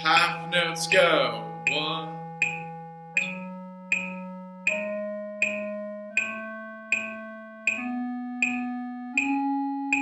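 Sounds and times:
electronic keyboard playing scale: 0:00.0 - 0:10.0
metronome clicks: 0:00.0 - 0:10.0.

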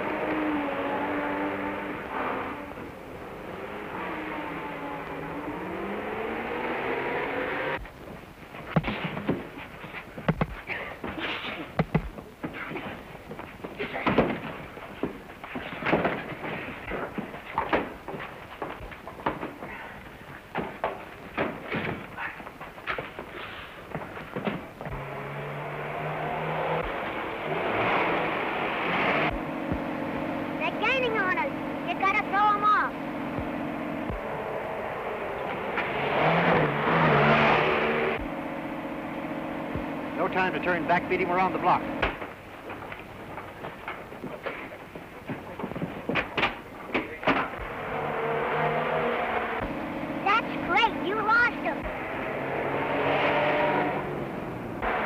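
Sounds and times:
old car engine running: 0:00.0 - 0:55.0
punches and thuds in fistfight: 0:08.6 - 0:23.2.

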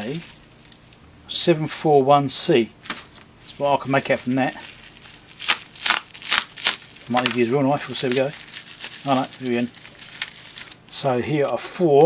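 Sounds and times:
plastic packet crinkling: 0:00.0 - 0:01.0, 0:03.8 - 0:11.6.

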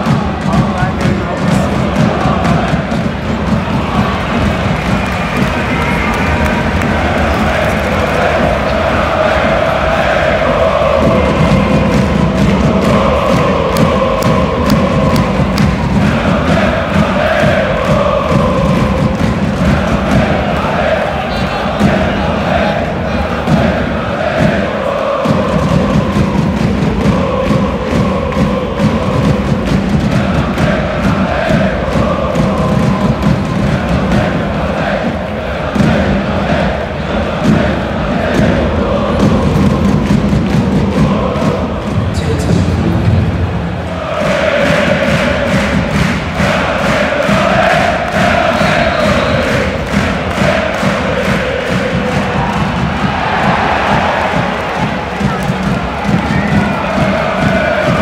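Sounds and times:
crowd singing a chant: 0:00.0 - 0:58.0.

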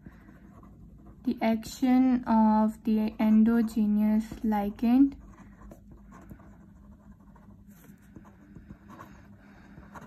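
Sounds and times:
pen scratching on paper: 0:00.0 - 0:01.6, 0:03.0 - 0:10.0.

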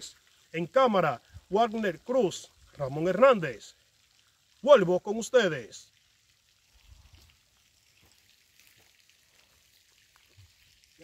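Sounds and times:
faint outdoor hiss: 0:00.0 - 0:11.0.

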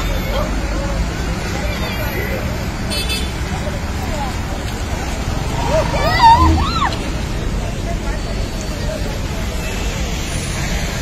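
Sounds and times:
bus engine rumble: 0:00.0 - 0:11.0.

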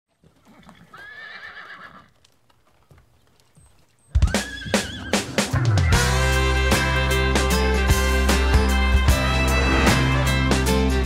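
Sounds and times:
horse whinnying: 0:00.4 - 0:02.2, 0:04.1 - 0:05.8.

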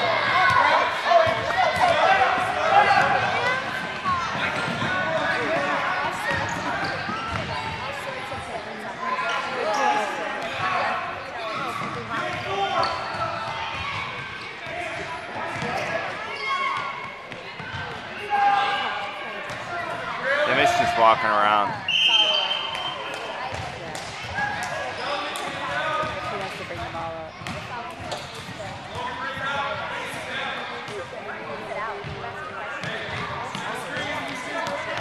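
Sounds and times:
chatter of children and adults: 0:00.0 - 0:35.0.

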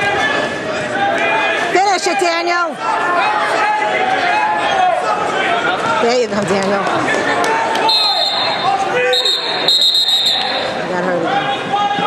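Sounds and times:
gym crowd voices: 0:00.0 - 0:12.0
referee's whistle blasts: 0:07.8 - 0:10.8.

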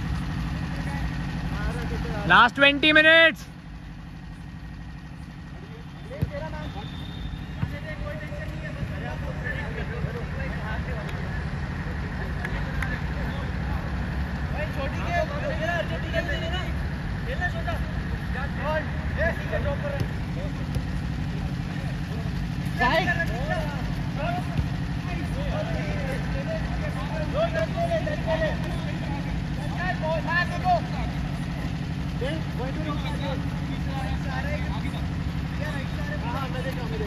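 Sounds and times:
low engine-like hum: 0:00.0 - 0:37.0
players calling out: 0:00.2 - 0:37.0
football being kicked: 0:06.1 - 0:09.2, 0:19.8 - 0:21.6, 0:24.4 - 0:24.9.

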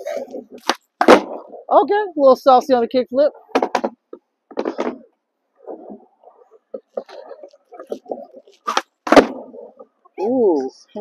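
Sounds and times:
skateboard tail cracking: 0:00.6 - 0:01.6, 0:07.0 - 0:09.7
skateboard wheels rolling on concrete: 0:07.0 - 0:09.9.

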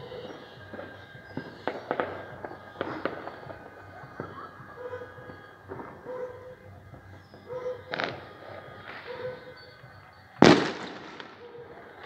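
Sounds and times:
fireworks bangs and pops: 0:00.0 - 0:06.1, 0:06.8 - 0:12.0.

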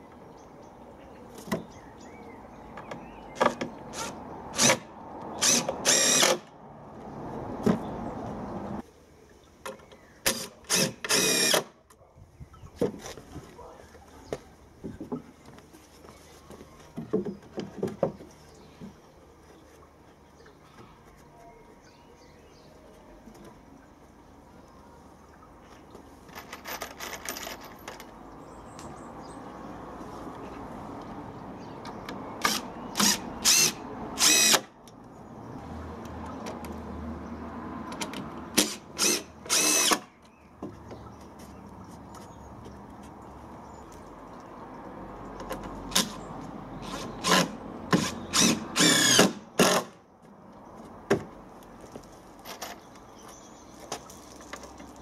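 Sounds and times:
cordless drill driving screws: 0:04.0 - 0:04.8, 0:05.4 - 0:06.4, 0:10.3 - 0:11.7, 0:32.4 - 0:34.7, 0:38.6 - 0:40.1, 0:46.8 - 0:50.0
wood knocks and handling: 0:12.7 - 0:13.5, 0:14.3 - 0:19.0.

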